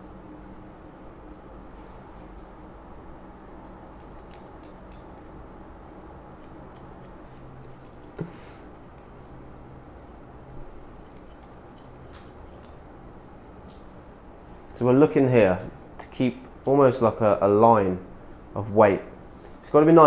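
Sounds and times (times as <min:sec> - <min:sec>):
scissors snipping hair: 0:03.2 - 0:09.3, 0:10.0 - 0:12.8
sharp scissors click: 0:03.3 - 0:09.3, 0:10.2 - 0:12.8.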